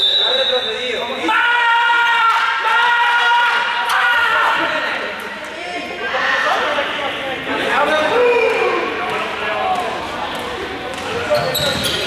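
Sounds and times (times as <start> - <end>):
young people calling and talking: 0.6 - 12.0.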